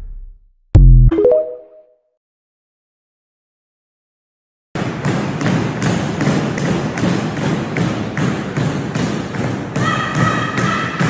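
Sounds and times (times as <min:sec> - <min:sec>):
rhythmic thumping: 0:00.0 - 0:01.2.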